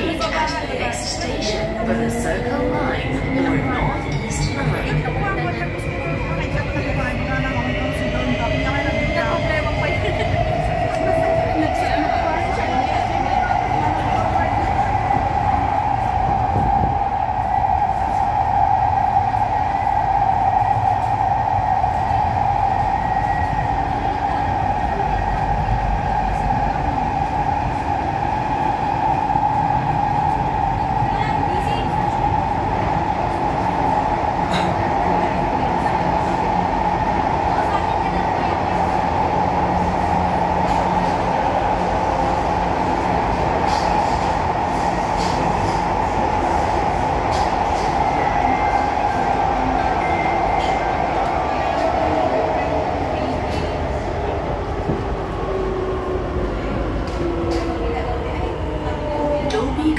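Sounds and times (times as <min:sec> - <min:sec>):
train wheels roaring on rail: 0:00.0 - 0:59.9.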